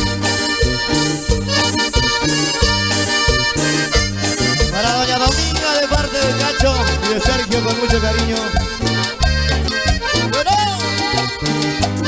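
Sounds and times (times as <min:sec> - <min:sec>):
accordion: 0:00.0 - 0:12.0
bass: 0:00.0 - 0:12.0
percussion beat: 0:00.0 - 0:12.0.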